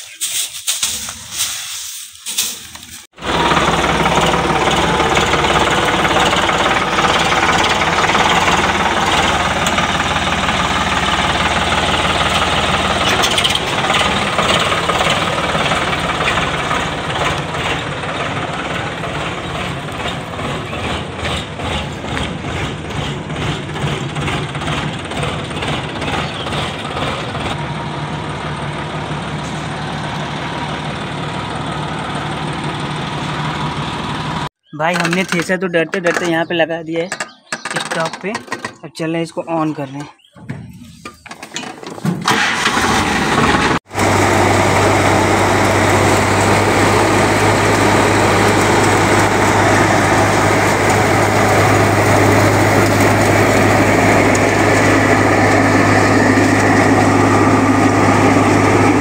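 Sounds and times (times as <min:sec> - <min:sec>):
tractor diesel engine running: 0:02.3 - 0:38.8, 0:39.6 - 0:59.0.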